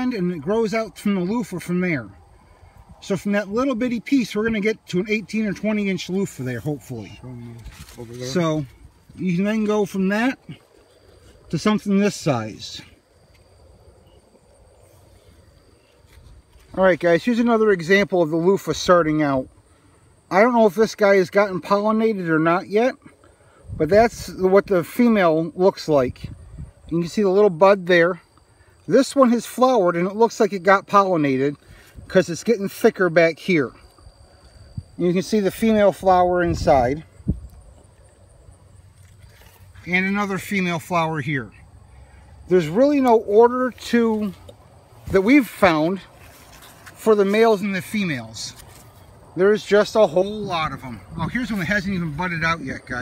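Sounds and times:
insects trilling: 0.0 - 53.0.

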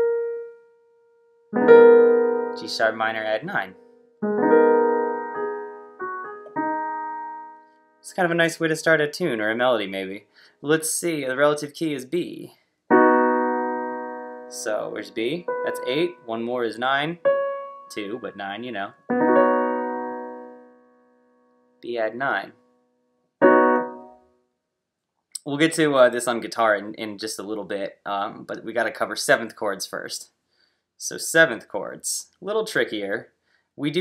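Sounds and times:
piano chord ringing: 1.5 - 3.0, 3.6 - 7.7, 12.9 - 16.4, 17.2 - 21.8, 23.4 - 24.2.

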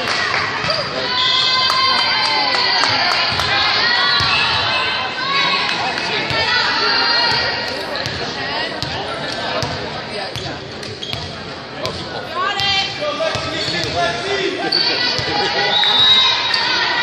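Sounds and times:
voices of players and spectators: 0.0 - 17.0
shoe squeaks: 11.0 - 11.3, 13.4 - 14.0.

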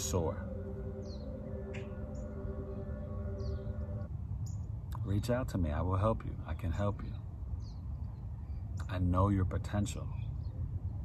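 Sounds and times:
steady drone of several tones: 0.0 - 4.9
low rumble: 0.0 - 8.8.

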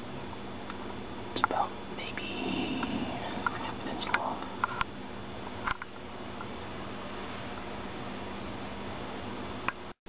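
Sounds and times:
person whispering: 1.4 - 4.6.

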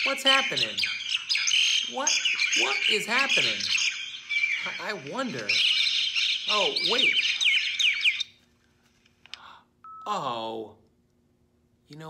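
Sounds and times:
birds chirping and squawking: 0.0 - 8.4.

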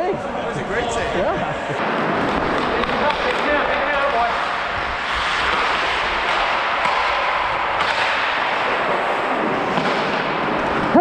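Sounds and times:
skates carving on ice: 1.8 - 11.0.

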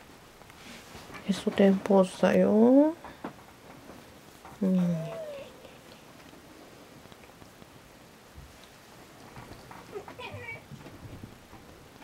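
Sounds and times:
cat whining: 4.6 - 5.8.

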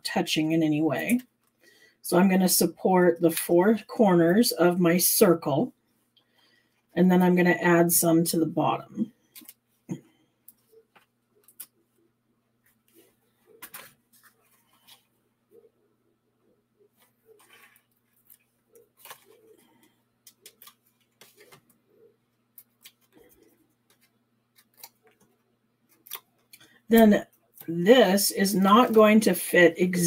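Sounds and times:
cardstock clicks and rustles: 13.4 - 15.0, 17.4 - 21.8, 22.5 - 26.7.

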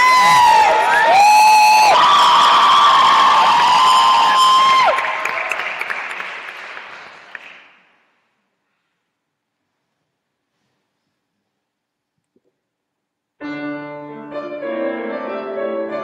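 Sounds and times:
high whoops: 0.0 - 5.4
audience applauding: 0.0 - 8.0.

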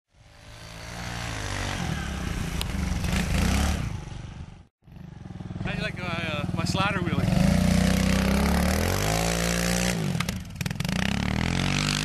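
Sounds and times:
dirt bike engine revving: 0.3 - 12.0.

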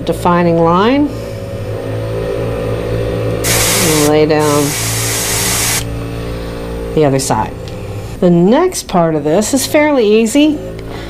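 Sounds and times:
steady low hum: 1.0 - 8.5
airbrush spraying hiss: 3.4 - 5.9.

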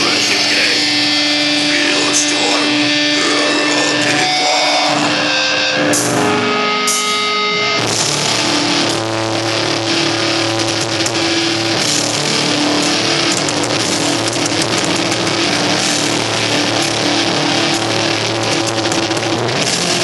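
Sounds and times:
death metal band playing live: 0.0 - 20.0.

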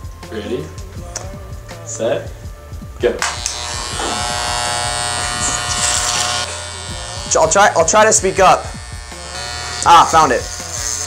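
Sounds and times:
electric hair clippers buzzing: 3.2 - 11.0.

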